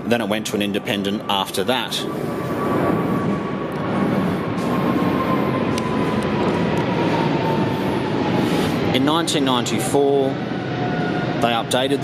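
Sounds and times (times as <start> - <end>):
jet aircraft passing overhead: 0.0 - 12.0.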